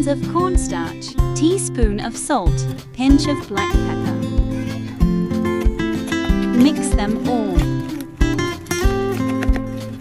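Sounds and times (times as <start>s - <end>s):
instrumental music with beat: 0.0s - 10.0s.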